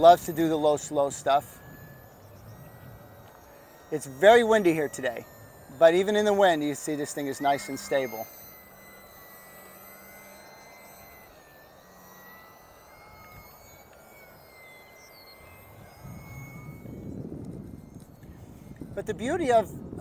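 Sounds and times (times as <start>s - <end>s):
electric motor propeller whine: 0.0s - 20.0s
wind rumble on microphone: 15.7s - 20.0s.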